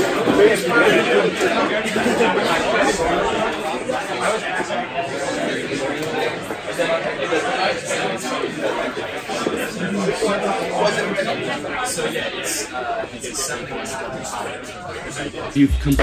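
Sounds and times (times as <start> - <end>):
babble of voices: 0.0 - 16.0.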